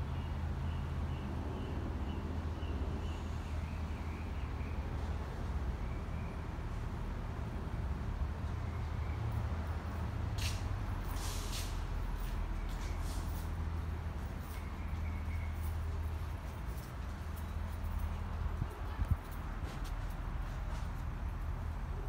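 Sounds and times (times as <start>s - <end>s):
low rumble of background noise: 0.0s - 22.0s
footsteps on concrete: 10.4s - 13.6s, 14.2s - 21.2s.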